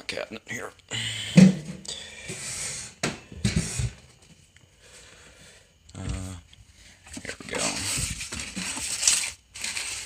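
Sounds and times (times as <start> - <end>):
rustling and shuffling: 6.6 - 10.0.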